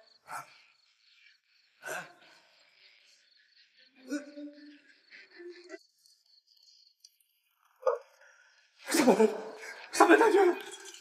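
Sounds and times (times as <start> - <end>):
faint crickets chirping: 0.0 - 11.0.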